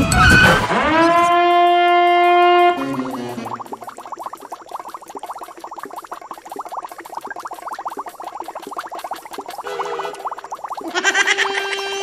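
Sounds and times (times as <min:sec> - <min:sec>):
cartoon bubbling blips: 0:02.7 - 0:11.8.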